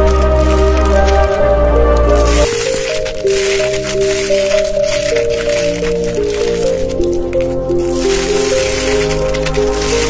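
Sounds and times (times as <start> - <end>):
background music: 0.0 - 10.0
slime squishing and popping: 0.0 - 10.0.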